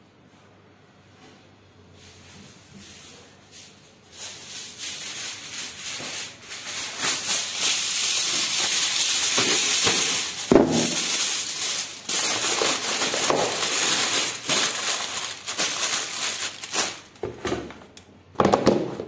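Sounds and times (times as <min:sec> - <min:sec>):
plastic bag and foil crinkling: 0:04.1 - 0:18.0.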